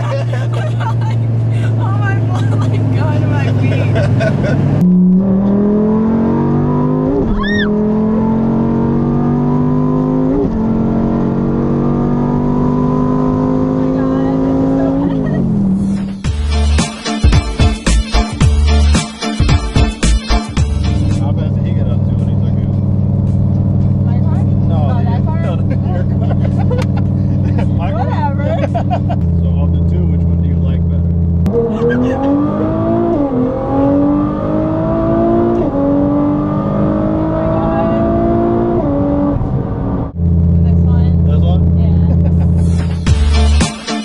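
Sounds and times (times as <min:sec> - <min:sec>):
woman laughing: 0:00.0 - 0:04.7, 0:14.0 - 0:15.7, 0:25.4 - 0:29.2, 0:31.6 - 0:32.5, 0:41.9 - 0:43.1
car engine accelerating hard: 0:00.0 - 0:16.2, 0:20.8 - 0:43.6
background music: 0:15.8 - 0:21.4, 0:42.6 - 0:44.0.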